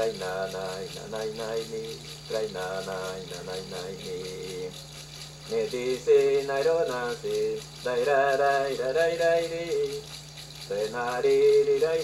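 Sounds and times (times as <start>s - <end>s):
person chanting wordless melody: 0.0s - 4.8s, 5.5s - 10.1s, 10.7s - 12.0s
low steady hum: 0.0s - 12.0s
shaken rattle: 0.0s - 12.0s.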